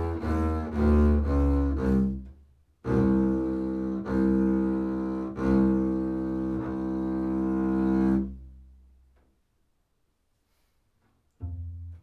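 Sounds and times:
bowed double bass low note: 11.4 - 12.0.

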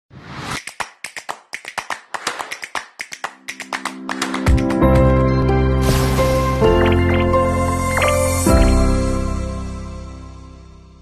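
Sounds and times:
sharp snaps: 0.5 - 4.4.

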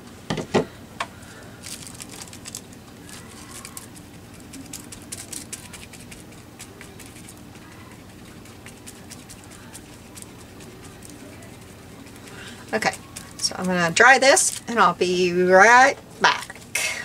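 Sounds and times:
paintbrush crackling on wet paper: 1.6 - 15.2.

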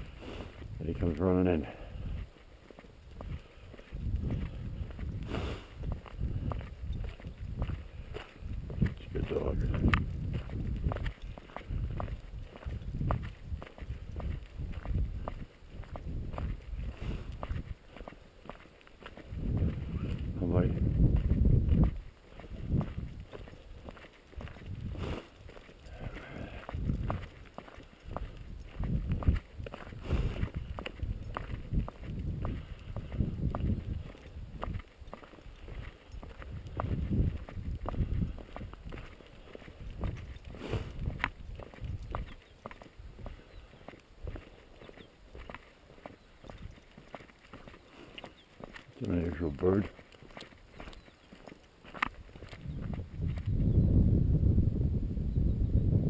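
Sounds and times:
footsteps on gravel: 0.0 - 53.7.

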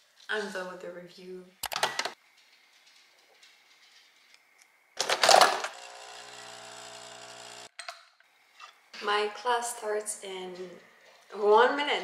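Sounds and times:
coffee machine pump humming: 5.7 - 7.7.

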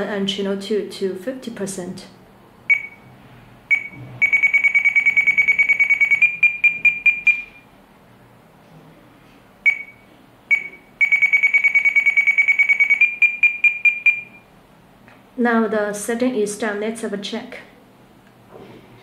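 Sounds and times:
high-pitched key beeps: 2.7 - 3.1, 3.7 - 7.7, 9.6 - 14.5.

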